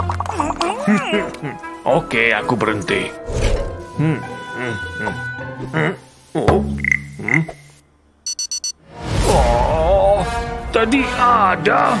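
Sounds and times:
person humming hmm: 0:04.0 - 0:06.6
high-pitched electronic beeps: 0:06.8 - 0:08.8.

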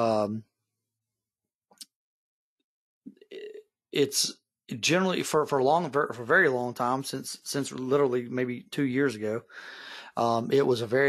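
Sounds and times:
man's rough throat noise: 0:03.1 - 0:03.7.

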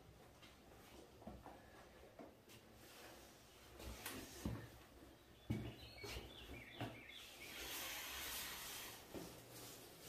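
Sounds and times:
faint bird chirps: 0:05.1 - 0:08.3.

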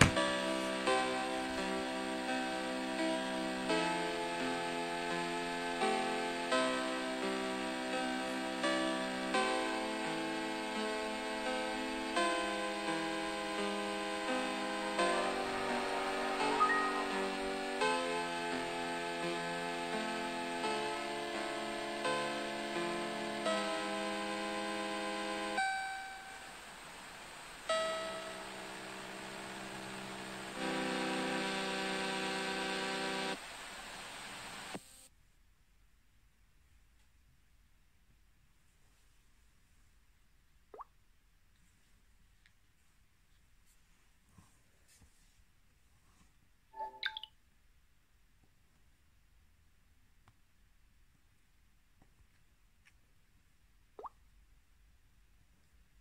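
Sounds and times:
piano-like boot-up chords: 0:12.6 - 0:19.1.

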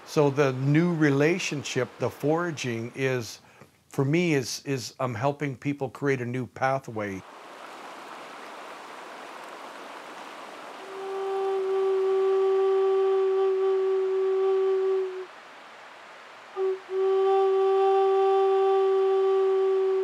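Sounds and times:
stream rushing: 0:00.0 - 0:03.3, 0:07.2 - 0:20.0
wooden flute long low note: 0:10.8 - 0:15.3, 0:16.6 - 0:20.0.

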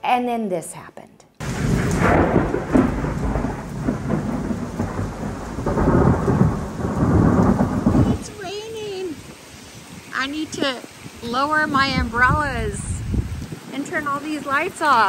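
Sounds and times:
heavy rain: 0:01.4 - 0:15.0
rumbling thunder: 0:01.4 - 0:15.0.

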